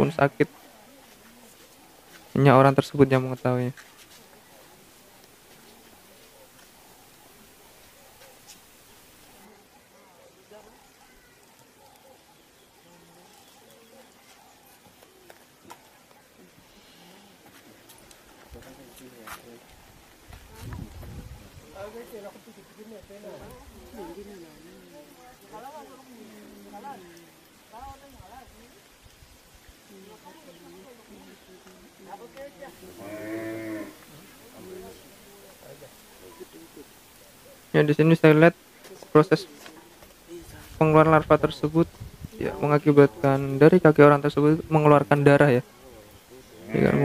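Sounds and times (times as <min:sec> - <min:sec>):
steady hiss: 0:00.0 - 0:09.6, 0:26.1 - 0:47.0
faint voices: 0:00.0 - 0:29.0, 0:29.7 - 0:44.2, 0:45.0 - 0:47.0
cow mooing: 0:32.9 - 0:34.0, 0:46.6 - 0:47.0.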